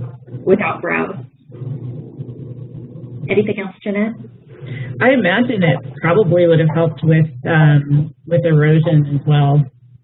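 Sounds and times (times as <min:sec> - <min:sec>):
low hum: 0:00.0 - 0:10.0
person speaking: 0:03.3 - 0:09.7.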